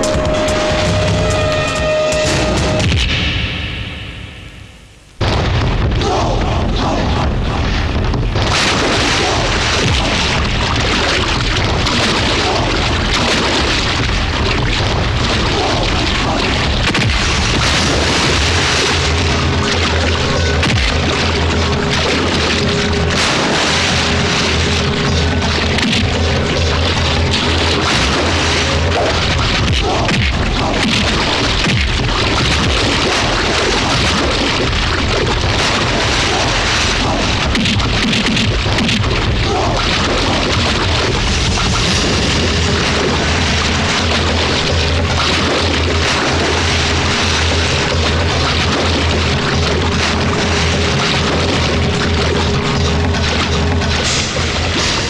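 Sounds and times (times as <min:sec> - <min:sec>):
fight impact sound effects: 0:00.0 - 0:10.7
action film score: 0:00.0 - 0:55.0
heavy booming hits: 0:00.0 - 0:55.0
low drone: 0:00.0 - 0:55.0.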